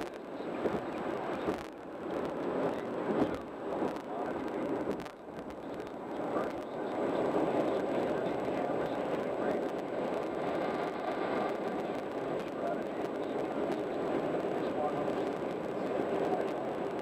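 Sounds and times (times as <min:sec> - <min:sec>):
road and tyre noise: 0:00.0 - 0:17.0.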